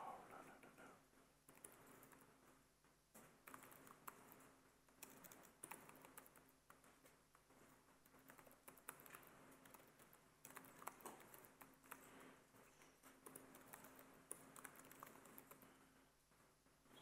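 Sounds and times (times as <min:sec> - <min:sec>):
computer keyboard typing: 0:01.5 - 0:02.4, 0:03.2 - 0:15.9.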